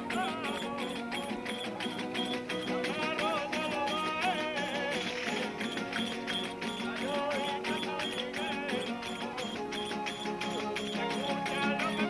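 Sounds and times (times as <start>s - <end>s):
steady rhythmic beat: 0.0s - 12.0s
strummed guitars: 0.0s - 12.0s
violin: 0.0s - 12.0s.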